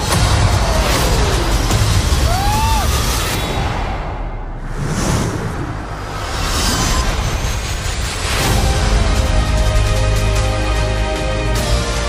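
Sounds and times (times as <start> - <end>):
dramatic score: 0.0 - 12.0
whooshing swells: 3.3 - 8.7.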